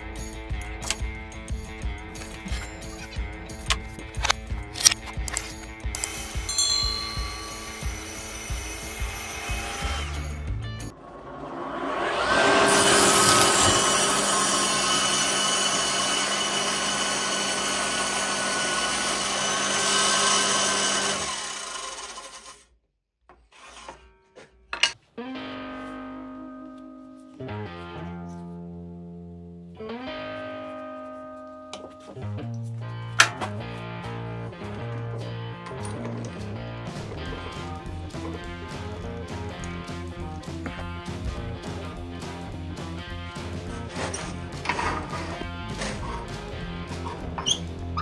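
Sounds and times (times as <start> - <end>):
background music: 0.0 - 16.4, 24.9 - 48.0
saw ripping wood: 2.2 - 6.5, 7.5 - 10.4, 12.2 - 22.6, 43.4 - 48.0
table saw whine: 6.0 - 22.6.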